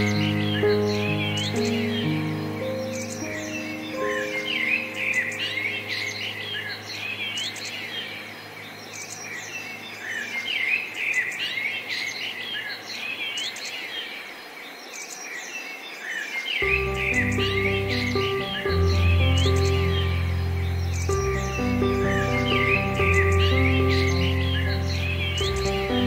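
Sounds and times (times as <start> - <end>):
soft piano notes: 0.0 - 12.4, 16.6 - 26.0
songbirds chirping and trilling: 0.0 - 26.0.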